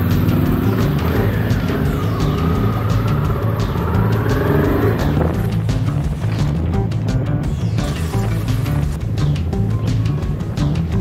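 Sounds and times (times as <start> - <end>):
motorcycle engine running: 0.0 - 11.0
music: 0.0 - 11.0.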